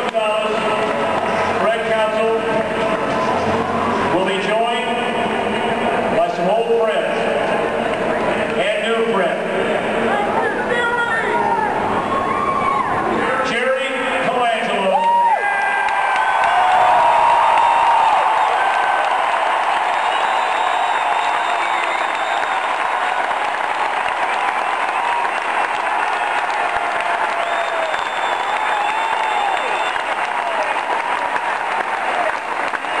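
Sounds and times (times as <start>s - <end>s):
crowd applauding: 0.0s - 4.2s, 15.0s - 33.0s
crowd voices and cheers: 0.0s - 33.0s.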